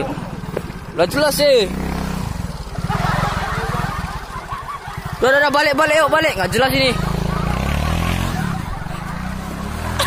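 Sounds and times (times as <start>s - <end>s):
scooter engine running: 0.0s - 10.0s.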